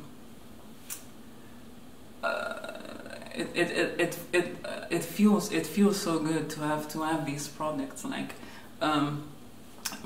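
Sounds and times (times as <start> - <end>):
woman's drawn-out vocal sound: 2.2 - 4.0.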